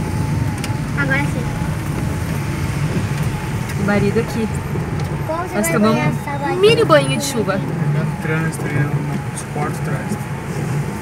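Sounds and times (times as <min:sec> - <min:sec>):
car engine and tyres on wet road: 0:00.0 - 0:11.0.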